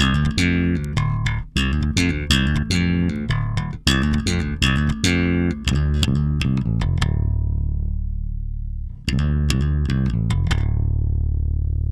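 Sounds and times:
electric bass plucked notes: 0:00.0 - 0:11.9.

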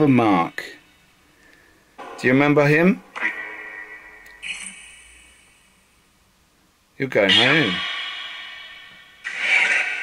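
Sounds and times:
echoing steady tones: 0:00.0 - 0:06.4, 0:07.2 - 0:10.0
hissy tone-laden burst: 0:04.4 - 0:05.8, 0:07.6 - 0:10.0.

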